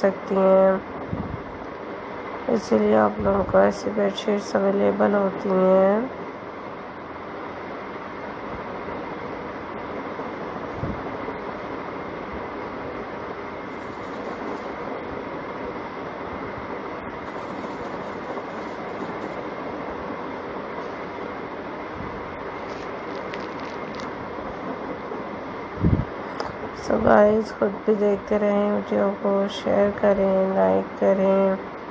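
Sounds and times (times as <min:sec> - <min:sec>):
rushing room noise: 0:00.0 - 0:29.7.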